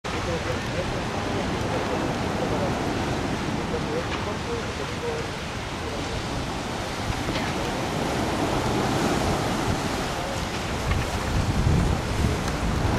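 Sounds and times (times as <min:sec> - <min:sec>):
surf washing onto sandy beach: 0:00.0 - 0:12.9
wind buffeting microphone: 0:00.1 - 0:12.9.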